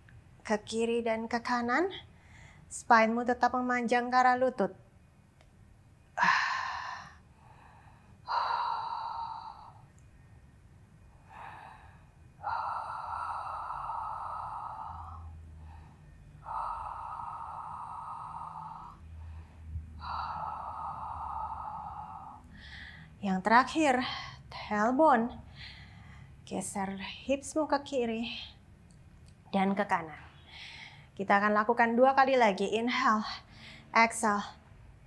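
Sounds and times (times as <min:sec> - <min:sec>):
woman breathing through mouth: 0:06.2 - 0:10.2, 0:11.0 - 0:23.2.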